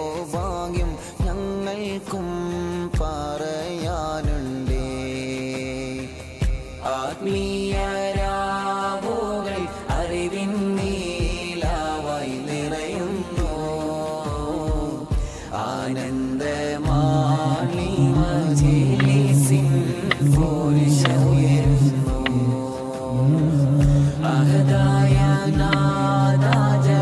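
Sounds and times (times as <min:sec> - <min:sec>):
man chanting devotional melody: 0:00.0 - 0:27.0.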